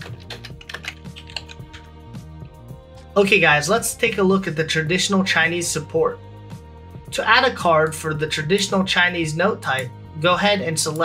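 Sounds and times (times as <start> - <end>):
computer keyboard clicks: 0.0 - 1.9
soft background music: 0.0 - 11.0.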